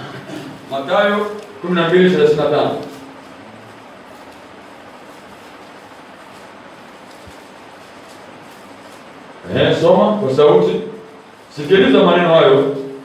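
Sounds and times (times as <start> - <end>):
background hiss: 0.0 - 13.0.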